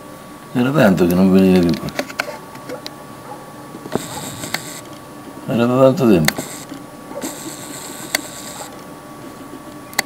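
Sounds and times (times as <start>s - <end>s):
camera zoom motor whirring: 3.9s - 5.0s, 6.2s - 9.6s
sharp click: 3.9s - 5.0s, 6.2s - 8.8s.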